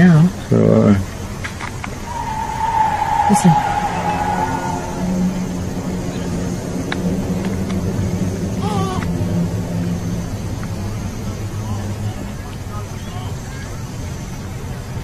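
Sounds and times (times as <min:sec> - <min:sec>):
low droning hum: 0:02.0 - 0:13.9.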